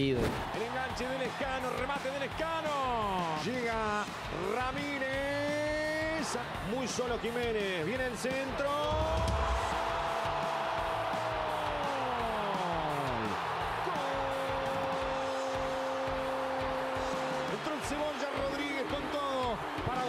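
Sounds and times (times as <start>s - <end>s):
fast commentary: 0.0s - 9.4s, 17.4s - 20.0s
stadium crowd noise: 0.0s - 20.0s.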